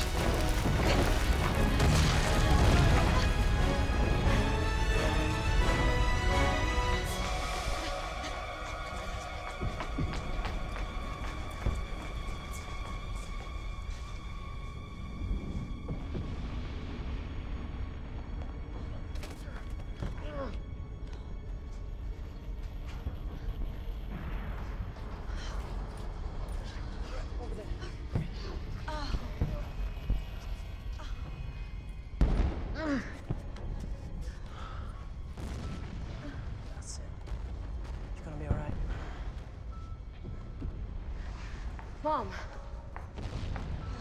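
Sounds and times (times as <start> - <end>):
tense music: 0.0 - 44.0.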